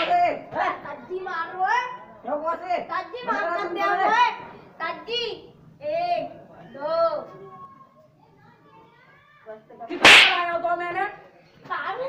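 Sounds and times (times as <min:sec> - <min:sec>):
sharp crack: 0:00.0 - 0:00.2, 0:10.0 - 0:10.6.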